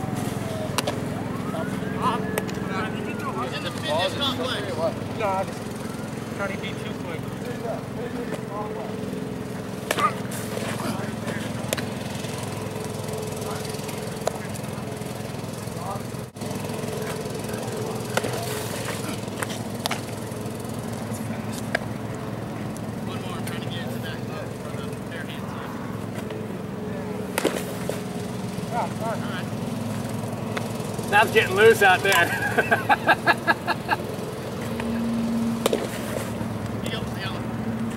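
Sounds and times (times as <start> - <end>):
mower engine droning: 0.0 - 37.9
ball smacking into a mitt: 9.9 - 10.2, 27.4 - 28.0, 35.6 - 36.0.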